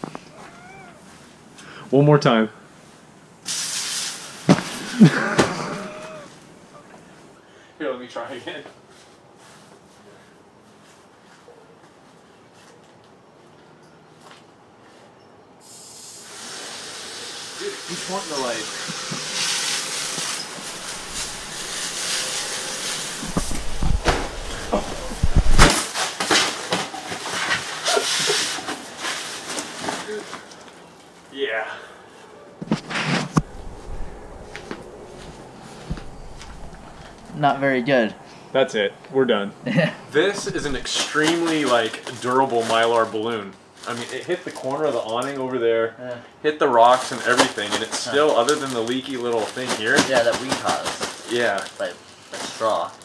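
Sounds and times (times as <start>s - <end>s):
short falling cry: 0.2s - 1.1s, 4.8s - 6.9s, 20.5s - 25.7s
water hissing from hose nozzle: 3.4s - 4.4s, 15.7s - 24.8s
balloon bumping and crinkling: 20.6s - 27.7s
wordless voice sounds: 40.2s - 40.9s.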